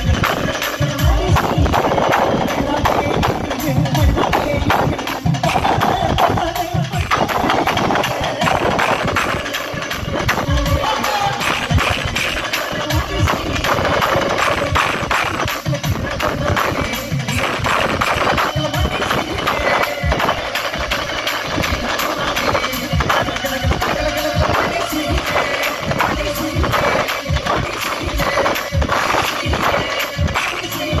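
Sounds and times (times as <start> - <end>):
fast steady drumming: 0.0 - 31.0
folk music through loudspeakers: 0.0 - 31.0.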